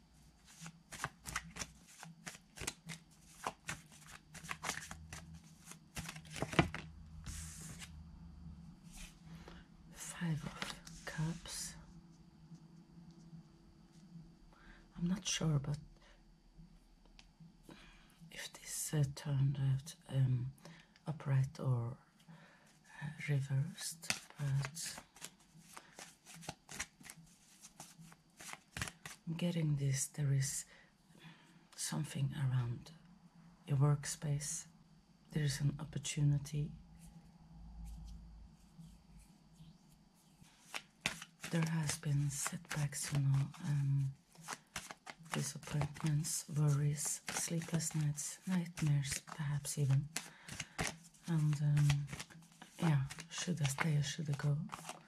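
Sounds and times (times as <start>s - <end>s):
cards being shuffled: 0.3s - 8.0s, 8.9s - 9.6s, 10.2s - 11.6s, 23.9s - 29.3s, 40.2s - 55.0s.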